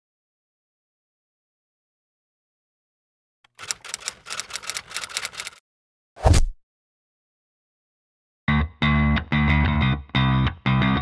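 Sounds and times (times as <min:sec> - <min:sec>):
typewriter keys clacking: 0:03.5 - 0:05.6.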